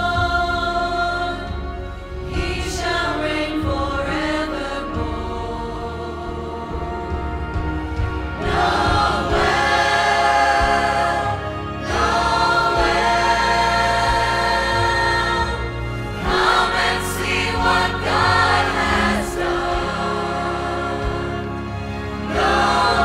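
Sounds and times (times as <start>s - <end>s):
mixed choir singing: 0.0s - 23.0s
steady low accompaniment: 0.0s - 23.0s.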